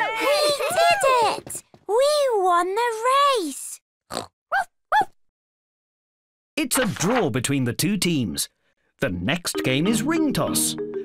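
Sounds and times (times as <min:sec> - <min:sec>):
cartoon pig snorts: 0:04.1 - 0:04.7.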